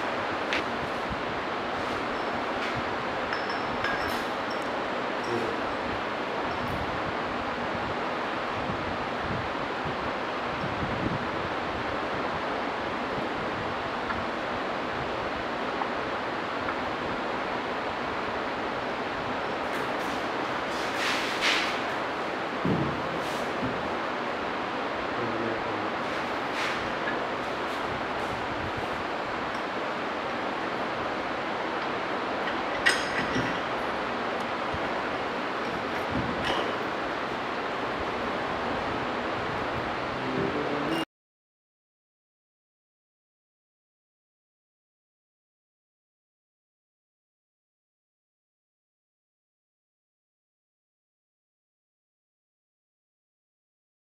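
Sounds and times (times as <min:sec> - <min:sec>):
steady background hiss: 0:00.0 - 0:41.0
light metal clinks and knocks: 0:02.0 - 0:05.7, 0:32.4 - 0:34.0.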